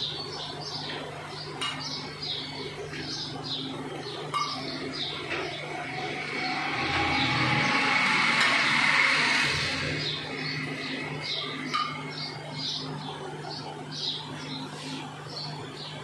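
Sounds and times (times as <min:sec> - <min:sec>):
small birds chirping: 0:00.0 - 0:07.4, 0:10.0 - 0:16.0
steady low hum: 0:00.0 - 0:16.0
broad rush of noise: 0:05.7 - 0:10.9.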